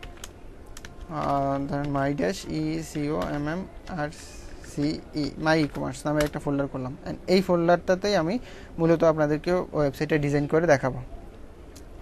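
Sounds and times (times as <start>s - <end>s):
keyboard keystrokes clicking: 0.0s - 2.3s, 5.5s - 6.7s
man talking: 1.1s - 11.1s.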